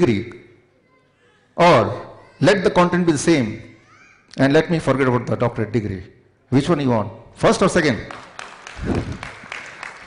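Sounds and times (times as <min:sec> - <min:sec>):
audience applauding: 0:08.1 - 0:10.0.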